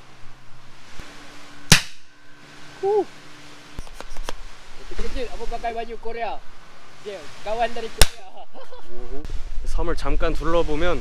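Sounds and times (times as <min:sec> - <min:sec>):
rifle shot: 0:01.7 - 0:02.1.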